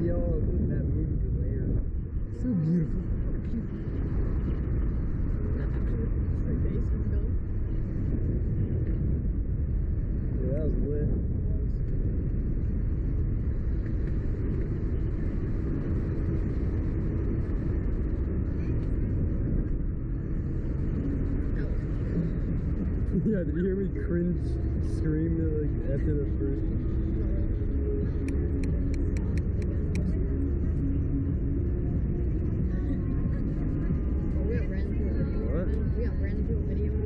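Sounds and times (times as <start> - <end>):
wind rushing over microphone: 0.0 - 37.0.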